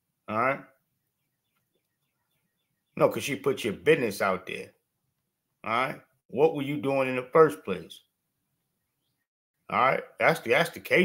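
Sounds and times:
small bird chirping: 0.9 - 3.1, 8.7 - 9.3.

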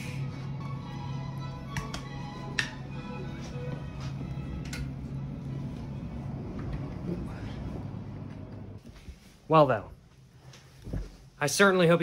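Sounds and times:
background music sustained tones: 0.0 - 8.8.

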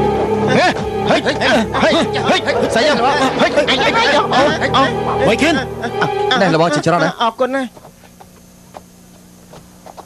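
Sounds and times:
voices chattering and calling out: 0.4 - 7.8.

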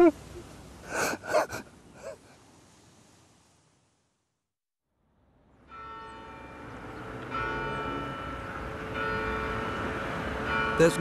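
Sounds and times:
man sobbing: 0.9 - 2.2.

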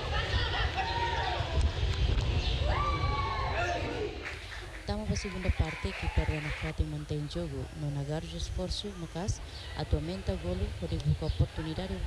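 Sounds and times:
people calling and shouting: 0.0 - 12.0
steady low rumble: 0.0 - 12.0.

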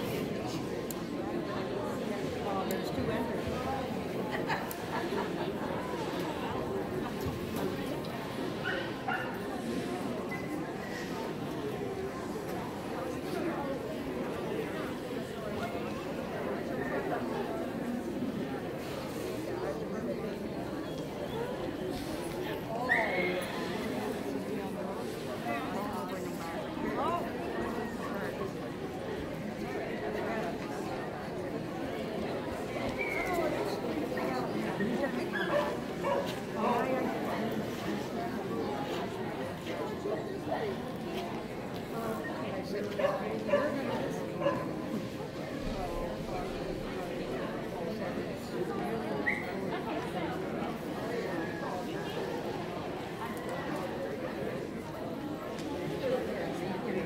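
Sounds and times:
people chattering in a hall: 0.0 - 57.0.

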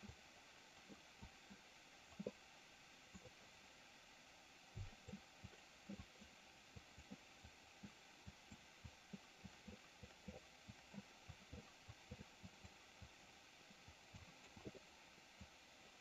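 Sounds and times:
faint room hiss: 0.0 - 16.0.

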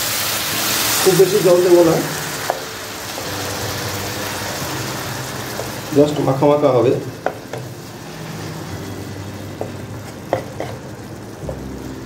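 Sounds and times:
steady sizzle: 0.0 - 12.0.

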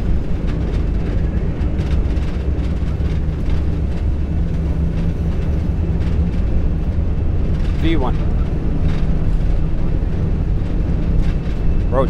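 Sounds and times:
jet engines at takeoff thrust: 0.0 - 12.0.

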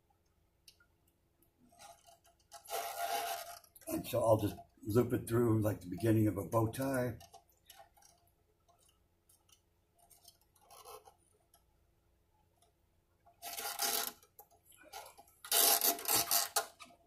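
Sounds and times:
scratchy string rubs: 1.7 - 4.5, 10.1 - 11.2, 13.4 - 16.9.

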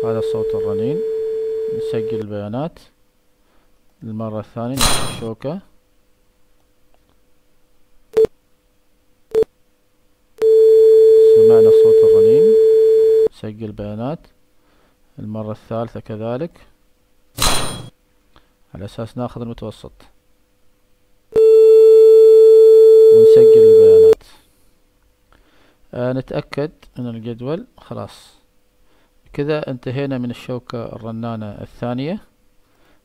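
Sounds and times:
loud steady synthesized tone: 0.0 - 2.2, 10.4 - 13.3, 23.0 - 24.2
tuning fork pure tone: 21.4 - 24.2.

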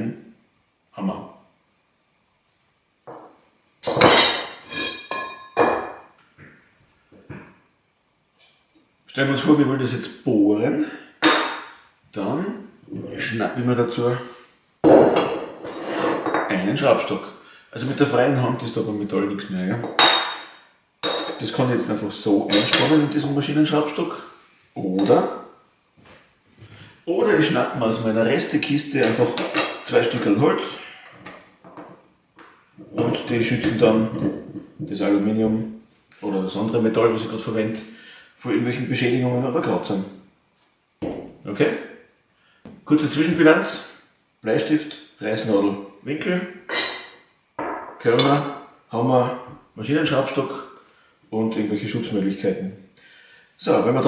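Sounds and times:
metal tools clanking on workbench: 22.5 - 23.1, 46.7 - 48.6.

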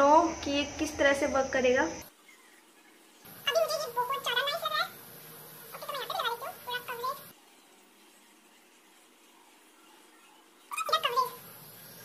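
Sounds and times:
sped-up woman's voice chattering: 10.7 - 11.4.

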